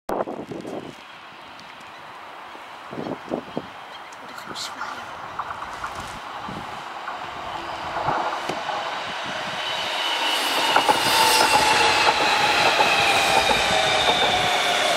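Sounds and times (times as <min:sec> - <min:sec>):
metro train arriving: 0:00.8 - 0:14.9
wheels clicking over rail joints: 0:05.1 - 0:06.3, 0:10.5 - 0:14.9.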